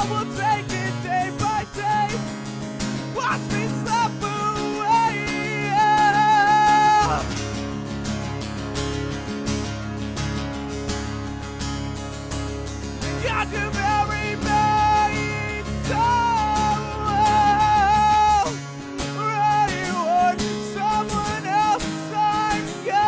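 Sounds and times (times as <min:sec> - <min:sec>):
man singing: 0:00.0 - 0:02.4, 0:03.1 - 0:07.4, 0:13.0 - 0:23.0
strummed acoustic guitar: 0:00.0 - 0:23.0.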